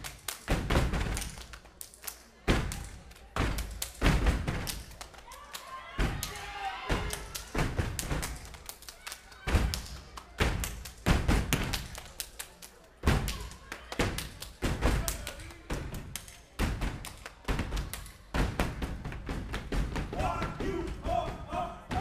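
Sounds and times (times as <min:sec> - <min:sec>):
rhythmic stomps on stage floor: 0:00.0 - 0:01.4, 0:02.5 - 0:04.8, 0:06.9 - 0:08.4, 0:09.5 - 0:11.8, 0:14.0 - 0:22.0
hands clapping: 0:00.0 - 0:18.2.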